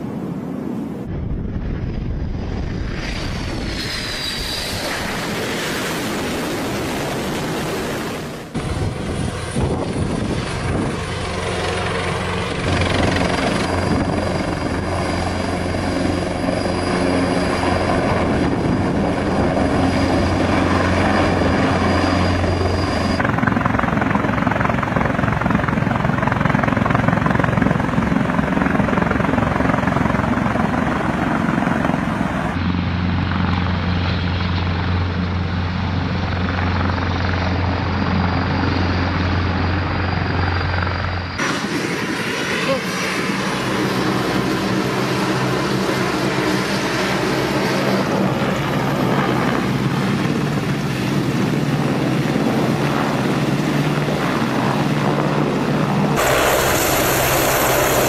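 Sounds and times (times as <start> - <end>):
helicopter rotor and turbine: 0.0 - 58.0
high turbine whine: 0.0 - 58.0.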